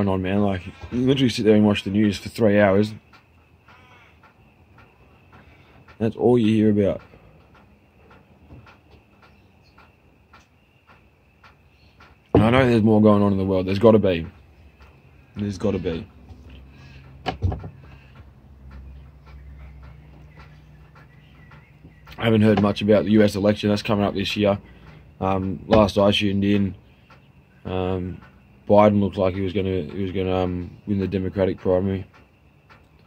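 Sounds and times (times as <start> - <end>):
faint bird chirps: 0.0 - 33.0
steady low hum: 0.0 - 33.0
soft ticks: 2.0 - 12.3, 13.1 - 33.0.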